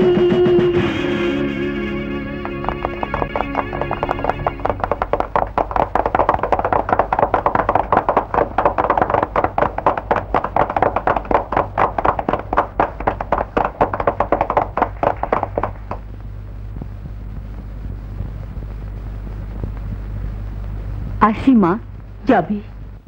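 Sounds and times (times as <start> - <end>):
low soundtrack hum: 0.0 - 23.0
fast hand percussion: 2.0 - 16.1.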